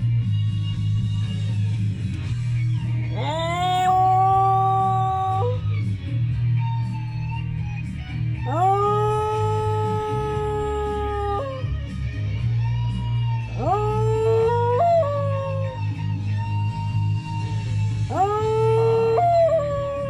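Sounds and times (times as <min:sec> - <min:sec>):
dog howling: 0:03.0 - 0:05.7, 0:08.4 - 0:11.8, 0:13.4 - 0:16.2, 0:18.0 - 0:20.0.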